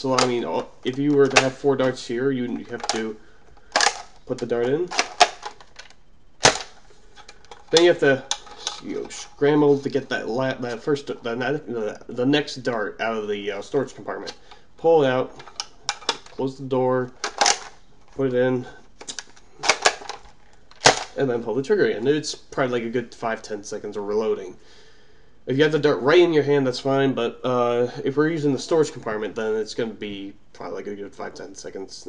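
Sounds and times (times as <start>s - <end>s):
plastic dart blaster clacking: 6.4s - 6.7s.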